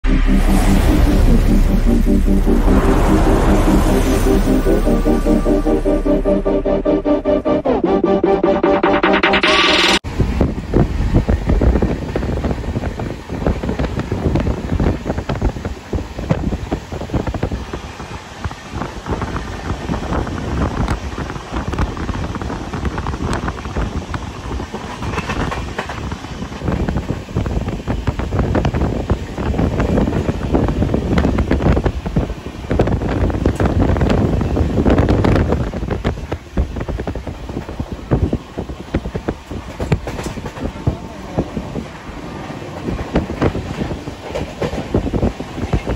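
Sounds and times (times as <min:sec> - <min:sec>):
wind buffeting microphone: 0:10.1 - 0:45.9
train wheels clattering on rails: 0:10.2 - 0:45.9.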